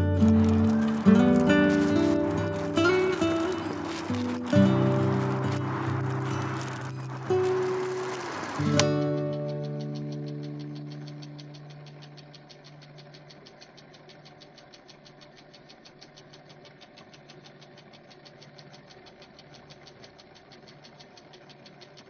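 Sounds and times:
background music: 0.0s - 12.1s
rapid mechanical ticking: 0.0s - 22.0s.

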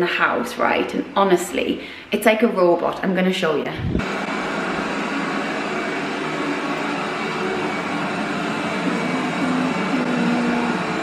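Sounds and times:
robot vacuum whirring: 4.0s - 11.0s.

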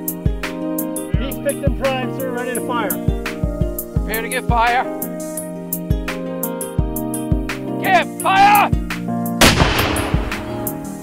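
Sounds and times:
cannon blast: 9.4s - 10.8s.

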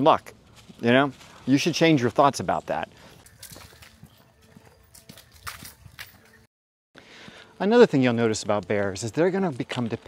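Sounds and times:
footsteps on rock and leaves: 0.0s - 6.5s.

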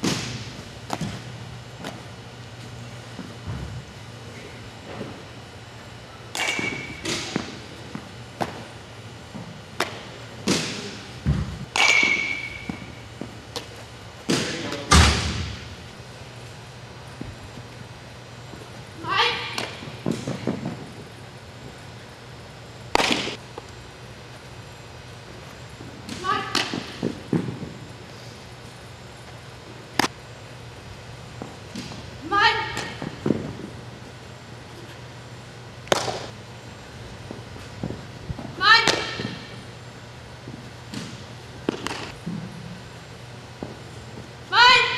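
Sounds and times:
softballs being hit and caught: 0.0s - 2.1s, 6.3s - 8.7s, 9.3s - 15.6s, 19.4s - 20.9s, 22.9s - 23.8s, 26.0s - 27.8s, 29.9s - 30.2s, 31.4s - 33.7s, 35.8s - 36.3s, 37.3s - 39.6s, 40.5s - 42.5s.

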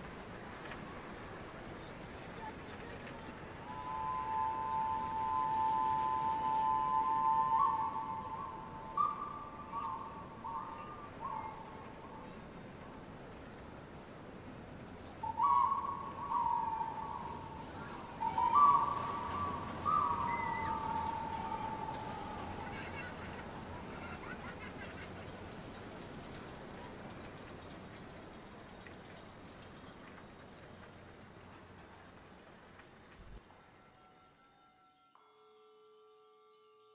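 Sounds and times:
hand-held wind instrument hooting: 3.7s - 10.8s, 33.7s - 36.9s.

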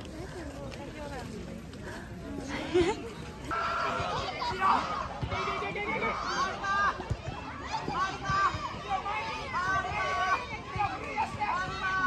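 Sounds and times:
children shouting: 3.5s - 12.0s.

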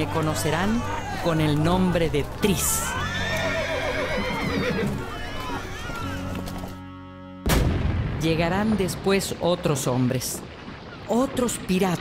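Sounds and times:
horse whinnying: 2.5s - 6.8s.

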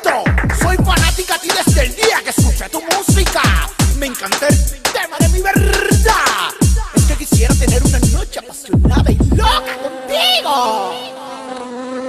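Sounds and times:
fly-like buzzing drone: 9.5s - 12.0s.

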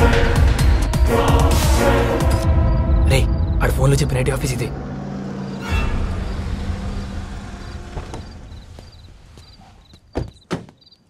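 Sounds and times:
car engine and tyres rumbling: 4.8s - 10.1s.

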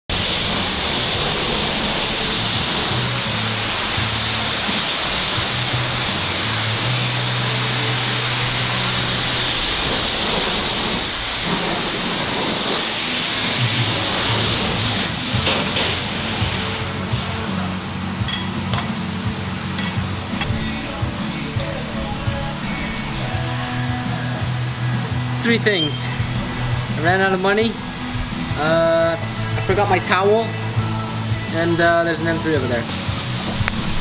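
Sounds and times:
pressure wand spraying water: 0.1s - 31.7s, 32.9s - 34.0s
background music with bass notes: 0.1s - 34.0s.

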